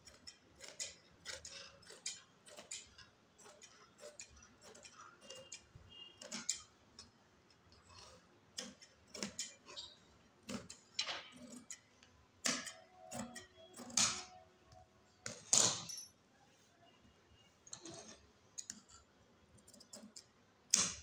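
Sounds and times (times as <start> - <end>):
scissors snipping fabric: 0.0 - 7.1, 7.7 - 9.8, 10.4 - 14.4, 17.8 - 21.0.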